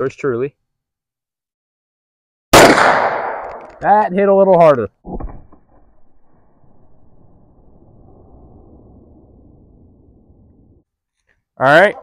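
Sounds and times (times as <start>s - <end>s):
low outdoor rumble: 6.1s - 10.8s.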